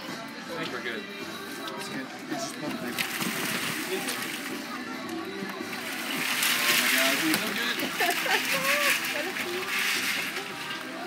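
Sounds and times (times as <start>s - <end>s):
food pouring onto table: 6.0s - 10.7s.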